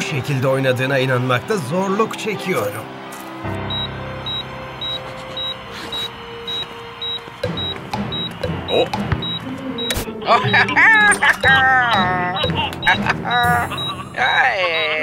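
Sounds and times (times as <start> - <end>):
low background music: 0.0 - 15.0.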